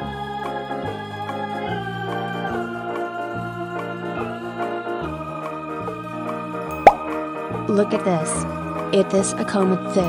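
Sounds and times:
loud plop with rising pitch: 6.7 - 7.1.

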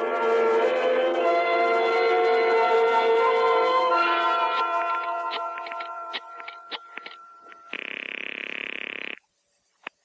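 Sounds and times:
telephone ringing tone: 3.9 - 9.2
dialling clicks: 5.0 - 9.2.

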